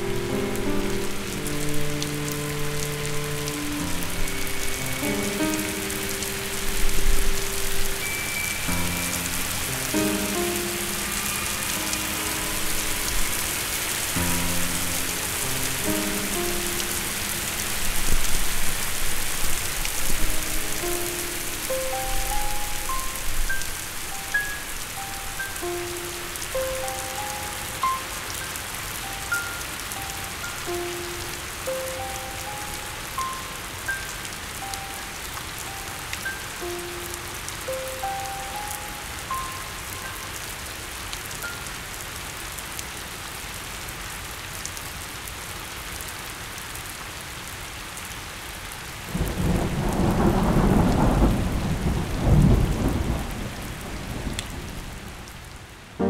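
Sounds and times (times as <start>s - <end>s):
rain-like hiss: 0.0s - 56.0s.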